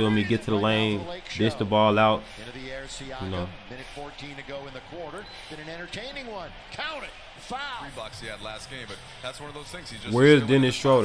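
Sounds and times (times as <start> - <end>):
commentator talking: 0.0 - 4.3.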